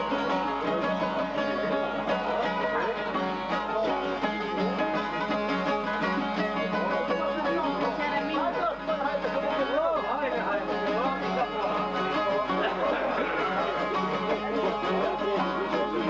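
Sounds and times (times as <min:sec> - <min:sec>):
plucked lutes folk tune: 0:00.0 - 0:16.0.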